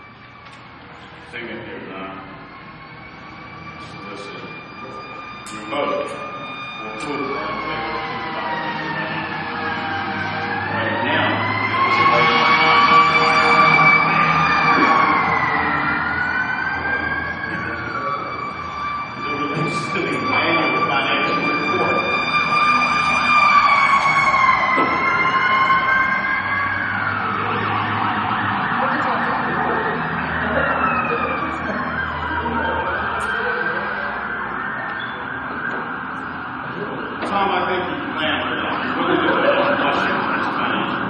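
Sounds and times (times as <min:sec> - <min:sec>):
emergency sirens wailing: 0:00.0 - 0:41.0.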